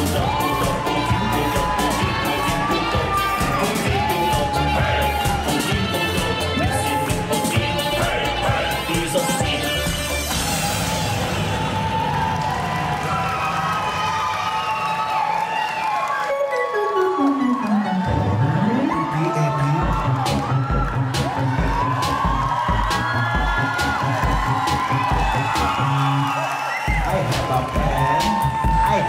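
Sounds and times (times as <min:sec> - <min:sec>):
dance music over pa: 0:00.0 - 0:12.9, 0:16.2 - 0:29.0
audience cheering and whooping: 0:00.0 - 0:29.0.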